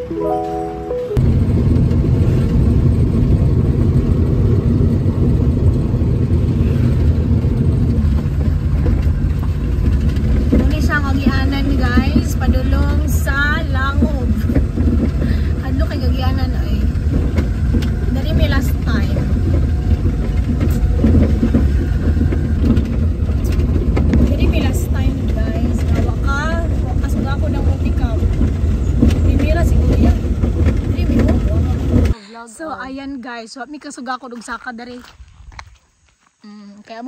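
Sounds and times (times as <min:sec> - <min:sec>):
vehicle engine and road rumble: 0:00.0 - 0:37.0.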